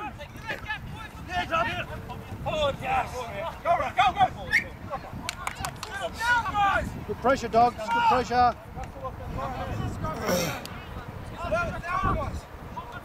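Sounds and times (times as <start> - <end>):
distant shouting voices: 0.0 - 13.0.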